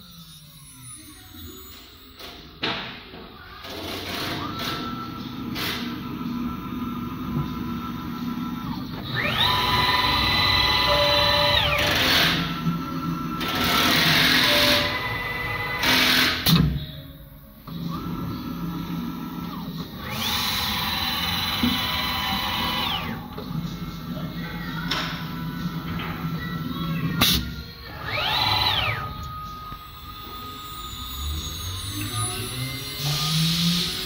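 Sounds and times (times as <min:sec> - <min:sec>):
router spindle whine: 0:03.6 - 0:16.9, 0:17.6 - 0:34.0.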